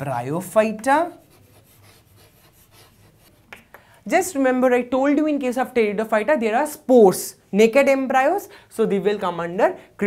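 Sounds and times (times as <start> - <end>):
chalk scratching on chalkboard: 0.7 - 3.6.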